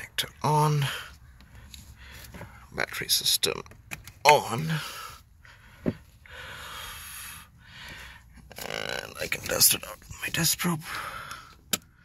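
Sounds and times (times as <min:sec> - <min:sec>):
person breathing out: 0:04.7 - 0:08.3.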